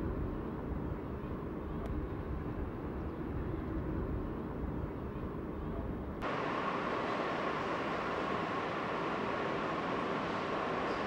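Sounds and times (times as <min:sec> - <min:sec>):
steady rushing noise: 0:06.0 - 0:11.0.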